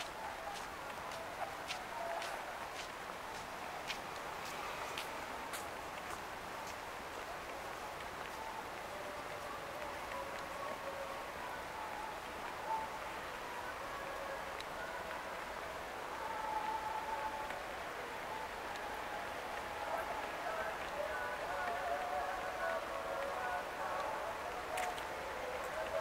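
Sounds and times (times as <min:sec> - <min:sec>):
background noise: 0:00.0 - 0:26.0
faint indistinct voices: 0:00.0 - 0:26.0.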